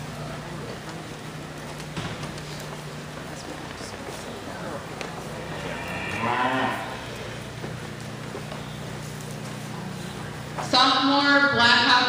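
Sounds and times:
cow mooing: 5.3 - 7.5.

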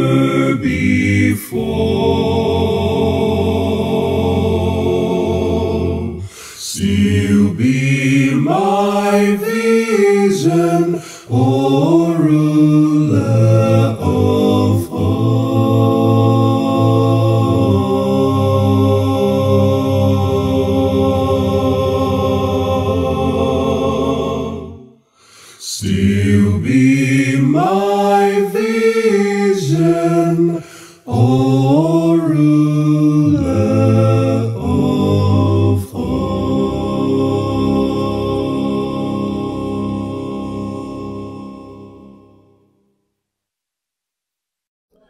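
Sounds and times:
a cappella male singing in harmony: 0.0 - 24.8, 25.6 - 41.8.

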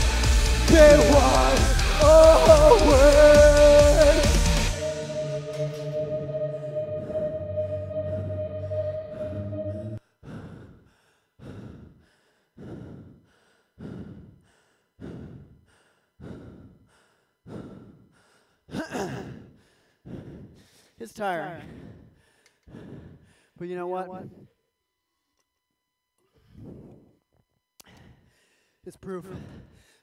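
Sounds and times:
rock song: 0.0 - 6.0
person breathing hard: 9.5 - 23.6, 26.2 - 27.2, 27.8 - 30.0.

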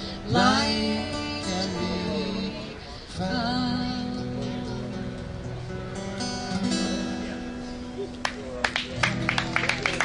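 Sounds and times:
acoustic guitar chord ringing: 0.0 - 8.0.

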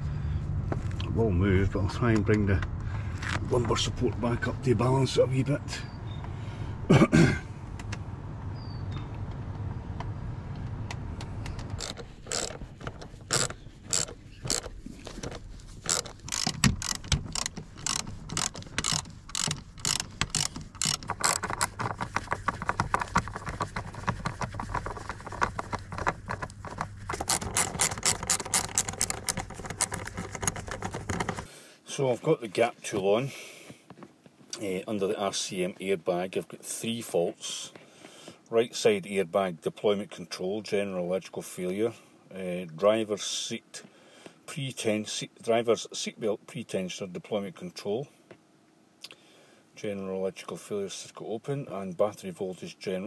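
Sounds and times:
ratchet wrench clicking: 11.8 - 21.8, 27.2 - 31.5.

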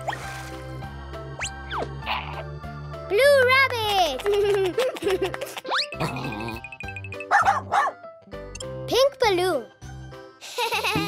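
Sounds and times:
light children's music: 0.0 - 11.0
cartoon dog barking: 7.3 - 8.0.

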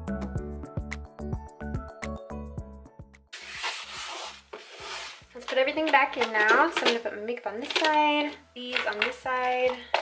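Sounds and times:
wipe rubbing inside drawer: 3.4 - 5.2.

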